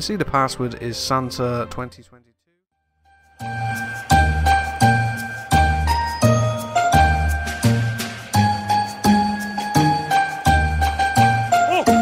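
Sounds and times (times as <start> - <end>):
chiming bell-like melody: 3.1 - 12.0.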